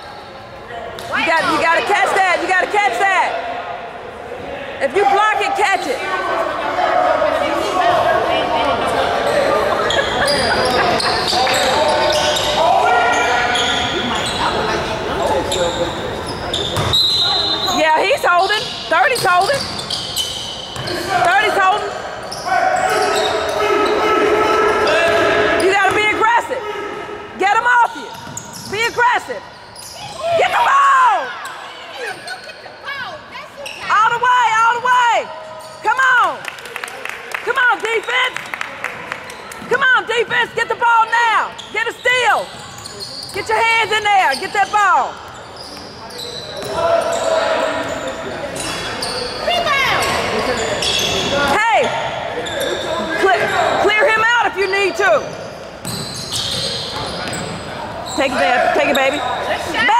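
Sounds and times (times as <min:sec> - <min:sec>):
sneakers squeaking: 0:00.0 - 0:03.0, 0:04.9 - 0:06.6, 0:07.3 - 0:26.6, 0:27.4 - 0:36.3, 0:37.8 - 0:59.9
basketball bouncing: 0:16.8 - 0:17.0, 0:55.8 - 0:56.2.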